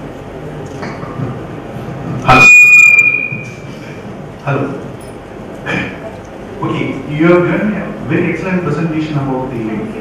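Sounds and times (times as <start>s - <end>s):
high-pitched feedback squeal: 2.3s - 3.7s.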